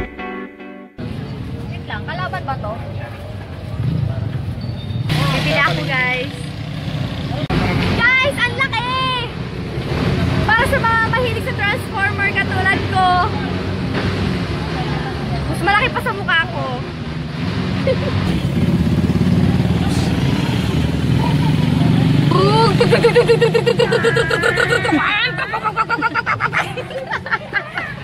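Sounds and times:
vehicle engines rumbling: 1.0s - 28.0s
people talking: 10.5s - 13.4s, 14.7s - 16.8s, 19.4s - 28.0s.

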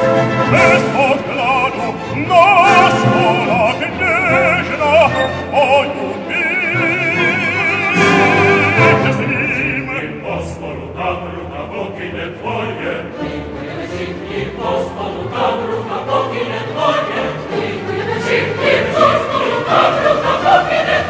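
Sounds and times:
operatic choir singing: 0.0s - 21.0s
orchestra: 0.0s - 21.0s.

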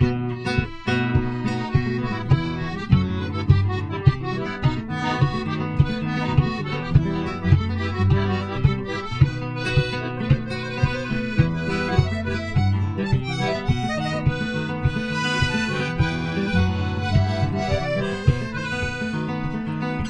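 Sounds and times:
acoustic guitar strumming: 0.0s - 20.0s
piano accordion melody: 0.0s - 20.0s.

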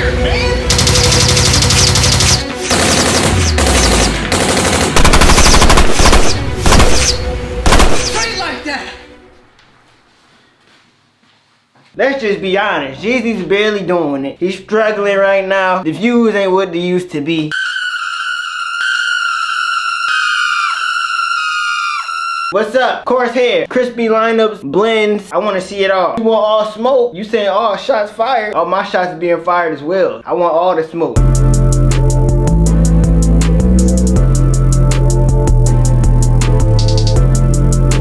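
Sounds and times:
music track: 0.0s - 9.6s
machine-gun fire bursts: 0.7s - 8.3s.

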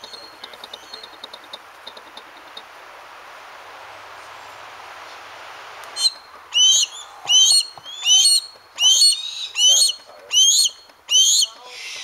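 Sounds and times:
small birds chirping: 0.0s - 2.6s
steady background hiss: 0.0s - 12.0s.

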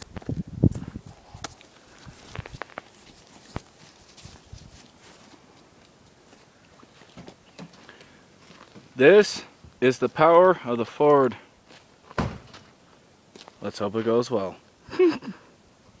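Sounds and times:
footsteps on dirt road: 0.0s - 14.2s.

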